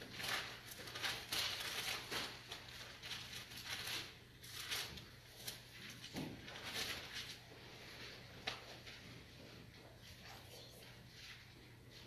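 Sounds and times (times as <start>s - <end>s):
thin pages turning and rustling: 0.0s - 7.5s.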